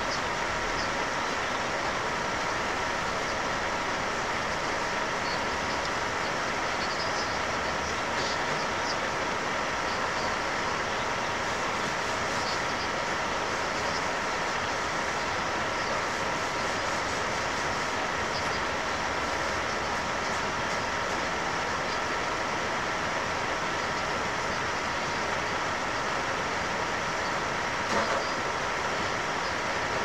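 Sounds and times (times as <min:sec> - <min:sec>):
static hiss: 0:00.0 - 0:30.0.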